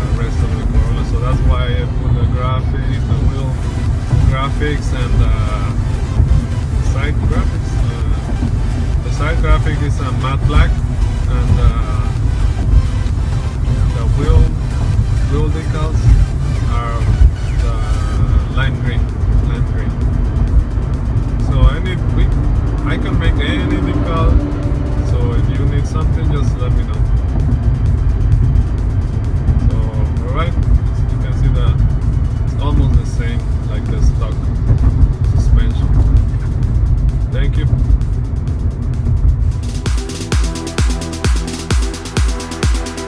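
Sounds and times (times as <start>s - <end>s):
voice: 0.0s - 5.8s, 6.8s - 8.3s, 9.0s - 12.2s, 13.8s - 14.6s, 15.3s - 20.0s, 21.4s - 27.0s, 29.7s - 31.8s, 32.5s - 34.4s, 35.2s - 36.2s, 37.3s - 37.8s
car cabin road and engine rumble: 0.0s - 43.0s
music: 0.0s - 43.0s.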